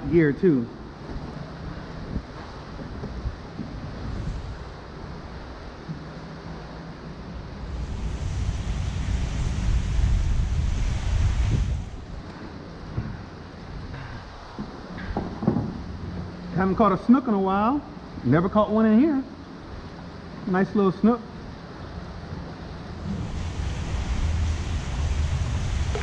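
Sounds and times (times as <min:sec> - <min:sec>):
wind buffeting microphone: 0:01.7 - 0:05.8, 0:07.3 - 0:14.6, 0:22.9 - 0:26.0
choppy water slapping: 0:23.0 - 0:26.0.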